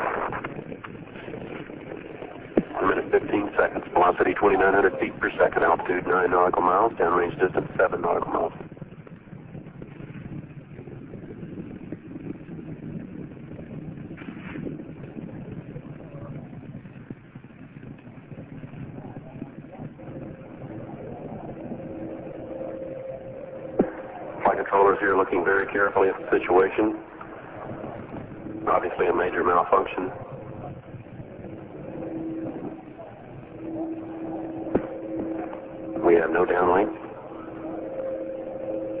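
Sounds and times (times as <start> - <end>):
faint steady hum: 0.0 - 39.0
steady rumbling noise: 0.0 - 39.0.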